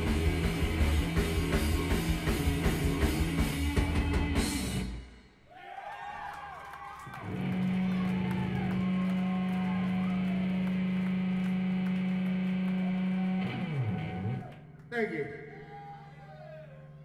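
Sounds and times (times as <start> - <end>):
amplified electric guitar: 0.0 - 5.0, 7.2 - 15.6
bass guitar: 0.0 - 5.2, 7.0 - 17.0.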